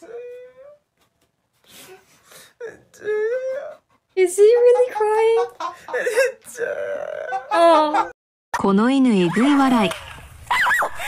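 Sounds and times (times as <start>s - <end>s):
man crying and sobbing: 0.0s - 0.9s, 1.6s - 8.2s.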